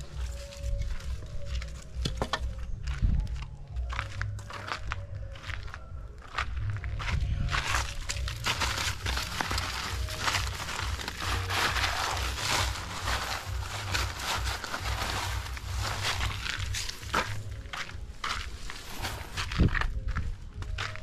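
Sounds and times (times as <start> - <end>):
footsteps scuffing on dirt: 0.0 - 21.0
paper sacks rustling and crinkling: 7.6 - 20.2.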